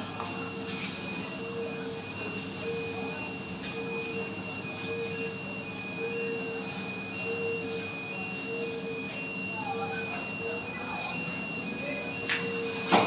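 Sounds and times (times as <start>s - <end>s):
factory machinery hum: 0.0s - 13.0s
two-tone warning beeper: 0.0s - 13.0s.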